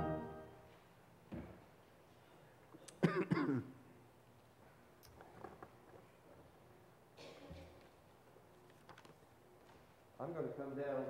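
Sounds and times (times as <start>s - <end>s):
person clearing throat: 3.0s - 3.8s, 7.2s - 7.8s.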